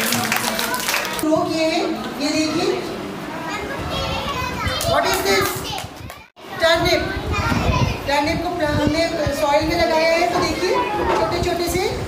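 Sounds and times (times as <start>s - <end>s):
children talking and calling out: 0.5s - 12.0s.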